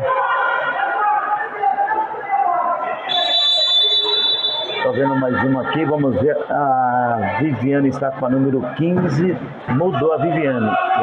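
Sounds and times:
voices calling out in a gym hall: 0.0s - 11.0s
high whistle blast: 3.1s - 5.0s.

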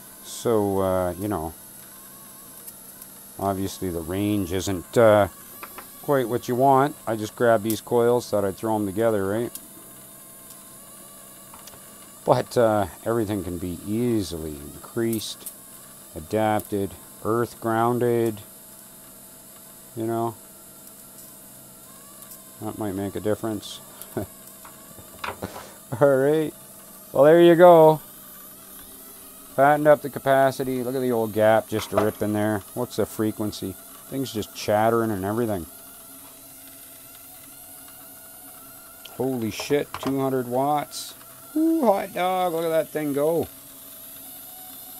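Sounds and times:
faint hum and hiss: 0.0s - 44.9s
spark gap chattering: 0.2s - 44.9s.

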